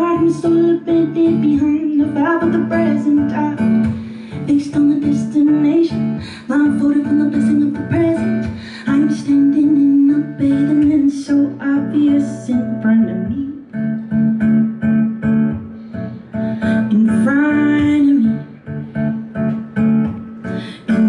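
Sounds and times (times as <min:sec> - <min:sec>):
woman singing: 0:00.0 - 0:13.8, 0:16.6 - 0:18.7, 0:20.4 - 0:21.0
acoustic guitar strumming: 0:00.0 - 0:21.0.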